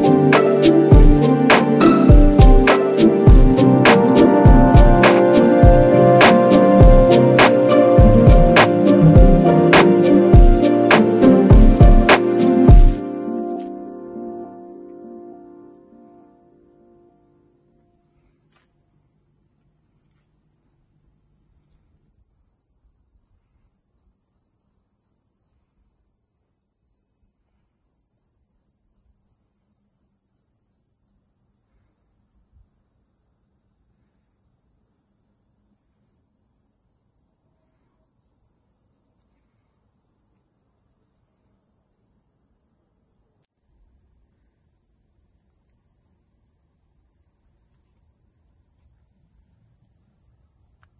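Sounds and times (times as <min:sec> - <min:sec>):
insects chirring: 0:00.0 - 0:50.9.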